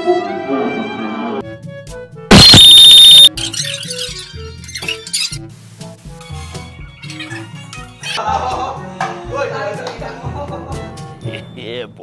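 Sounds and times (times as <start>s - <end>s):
loud electronic beep: 2.3s - 3.3s
quiet background music: 3.3s - 12.0s.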